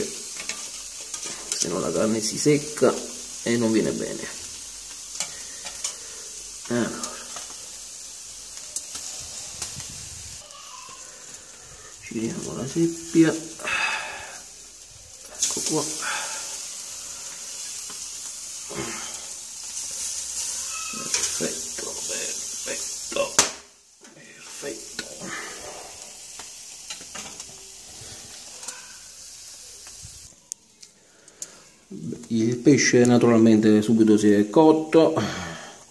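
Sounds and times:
faint crackles of embers: 0.0 - 35.9
food sizzling on grill: 0.0 - 35.9.

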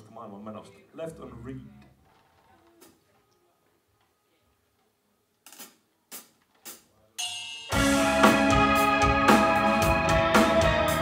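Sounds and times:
metal band playing: 7.2 - 11.0.

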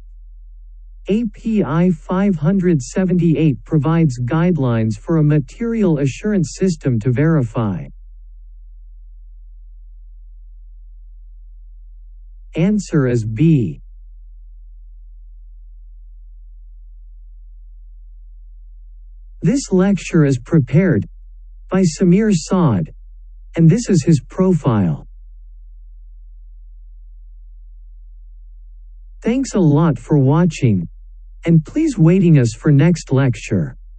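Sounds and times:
steady low hum: 0.0 - 33.9.

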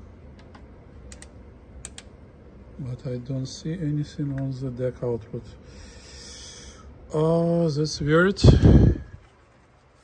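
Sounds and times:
low steady hum: 0.0 - 10.0
switches clicking: 0.3 - 2.2.

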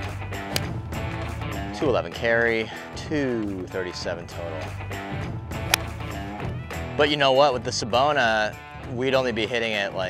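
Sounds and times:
background music: 0.0 - 10.0
golf club striking ball: 5.6 - 6.1.

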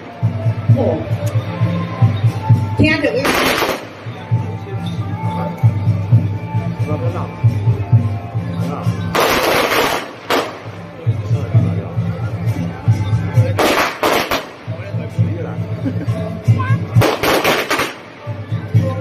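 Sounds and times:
firecrackers crackling: 3.1 - 4.5, 9.0 - 11.0, 13.5 - 14.9, 16.9 - 18.8.

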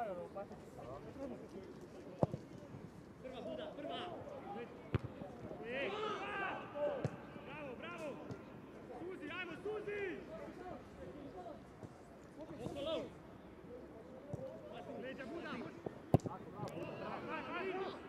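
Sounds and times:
ball being kicked: 16.1 - 16.8.

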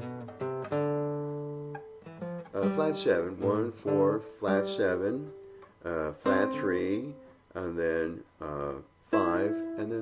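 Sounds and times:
classical guitar plucked notes: 0.0 - 8.0, 9.0 - 10.0.

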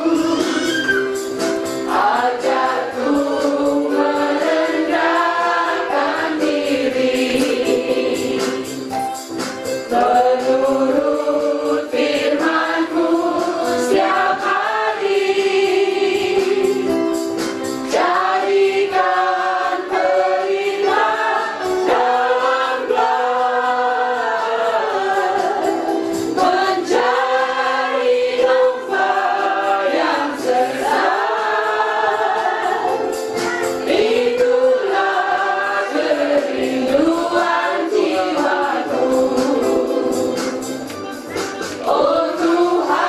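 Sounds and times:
congregation singing a hymn: 0.0 - 8.9, 9.9 - 40.9, 41.8 - 43.0.

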